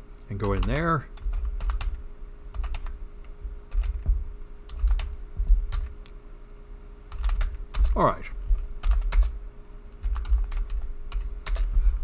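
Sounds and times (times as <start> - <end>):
faint steady hum: 0.0 - 12.0
keyboard typing clicks: 0.2 - 3.0, 4.7 - 6.2, 8.6 - 11.7.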